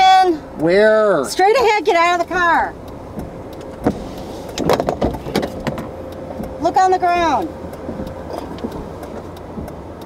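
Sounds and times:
low steady car noise: 0:00.0 - 0:10.0
car door clicks and knocks: 0:03.1 - 0:04.0, 0:04.6 - 0:06.6.

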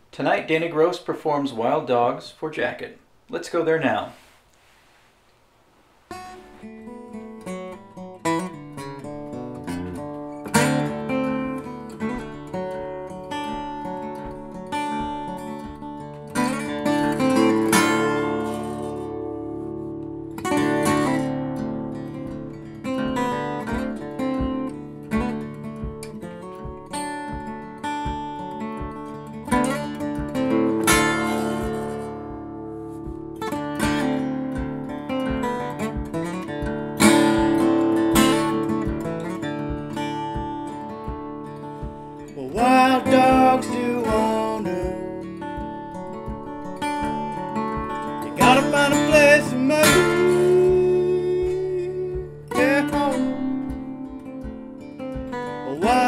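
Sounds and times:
fingerstyle acoustic guitar: 0:06.0 - 0:56.0.

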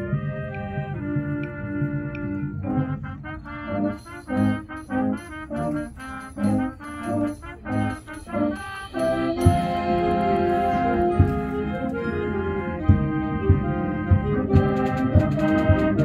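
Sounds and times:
concert band playing: 0:00.0 - 0:16.0.

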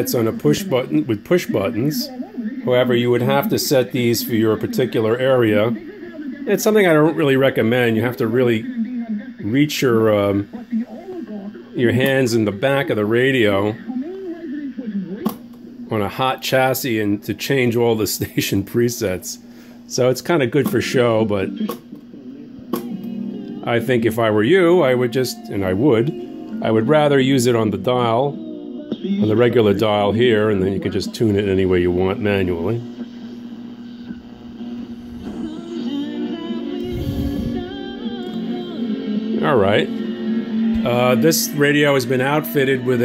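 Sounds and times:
song through radio loudspeaker: 0:00.0 - 0:14.0, 0:19.4 - 0:43.0
radio tuning: 0:00.0 - 0:43.0.

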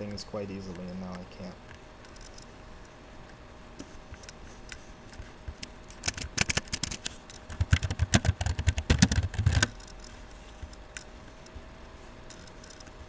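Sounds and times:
typing on laptop keyboard: 0:05.9 - 0:10.1.

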